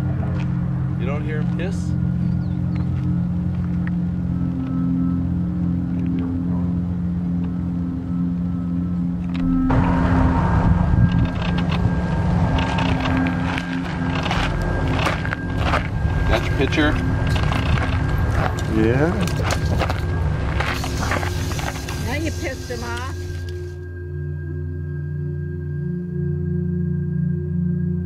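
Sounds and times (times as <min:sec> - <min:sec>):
crackling: 0:11.0 - 0:23.8
harsh hissing noise: 0:20.6 - 0:23.8.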